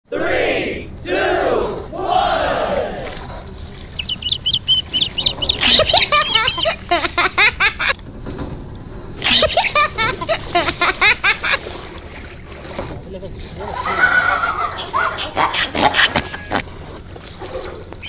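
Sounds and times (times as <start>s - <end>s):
swooping sounds: 3.9s - 7.1s
high-pitched voices shouting: 4.0s - 6.8s.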